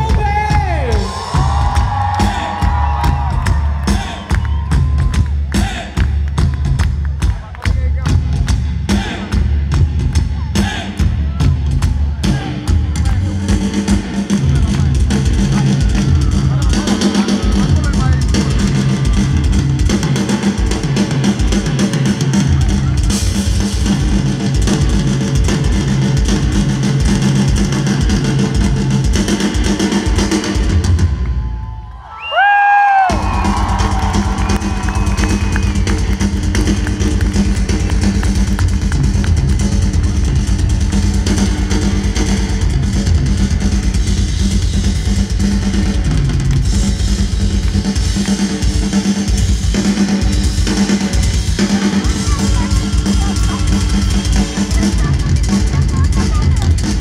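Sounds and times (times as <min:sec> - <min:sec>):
drum kit beat: 0:00.0 - 0:31.3, 0:32.4 - 0:57.0
rock band playing live: 0:00.0 - 0:31.6, 0:32.6 - 0:57.0.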